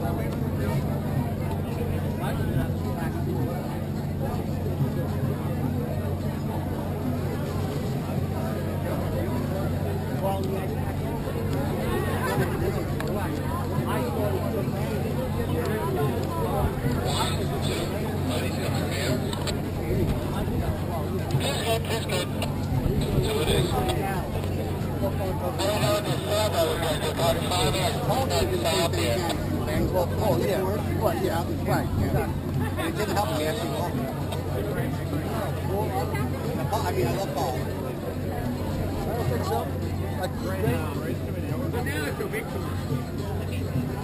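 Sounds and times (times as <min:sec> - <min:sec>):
background conversation: 0:00.0 - 0:44.0
people talking: 0:00.0 - 0:44.0.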